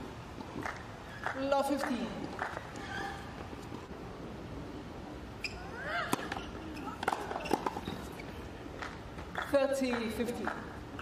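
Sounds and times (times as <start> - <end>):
shoe squeak: 2.8 - 3.7, 5.4 - 8.5.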